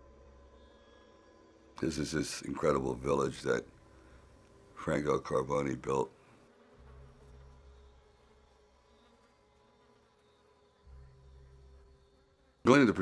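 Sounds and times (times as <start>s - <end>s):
low hum: 0.0s - 9.8s
flies buzzing: 0.0s - 13.0s.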